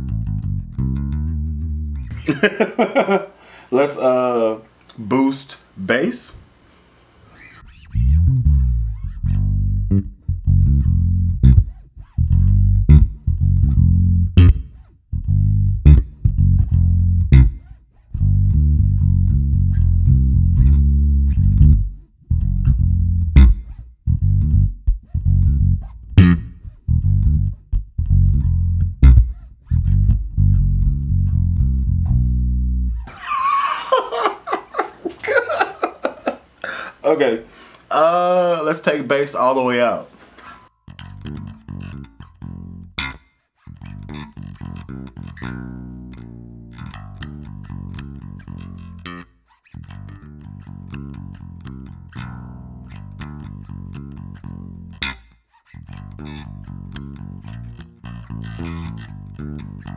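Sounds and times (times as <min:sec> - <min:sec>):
electric bass plucked notes: 0:00.0 - 0:03.1, 0:07.3 - 0:33.1, 0:40.8 - 0:59.9
man laughing: 0:02.1 - 0:04.3, 0:33.1 - 0:37.0.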